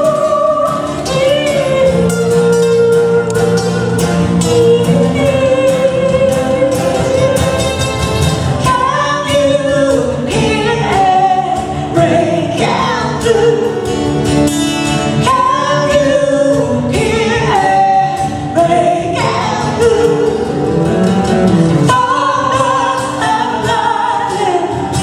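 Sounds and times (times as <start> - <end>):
amplified instrumental backing: 0.0 - 25.0
woman singing into a microphone: 0.0 - 25.0.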